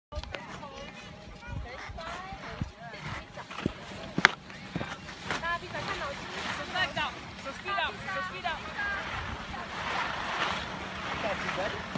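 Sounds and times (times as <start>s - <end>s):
wind noise on microphone: 0.1s - 6.2s
children calling and chattering: 0.2s - 10.3s.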